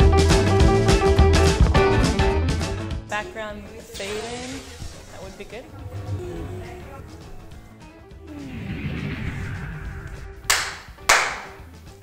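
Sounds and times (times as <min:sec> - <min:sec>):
faint background music: 0:01.8 - 0:12.0
sharp claps with ringing tail: 0:10.5 - 0:11.6.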